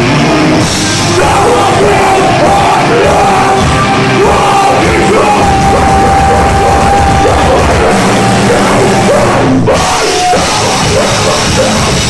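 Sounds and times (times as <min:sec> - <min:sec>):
rock band playing loudly: 0:00.0 - 0:12.0
yelled vocals: 0:00.0 - 0:12.0.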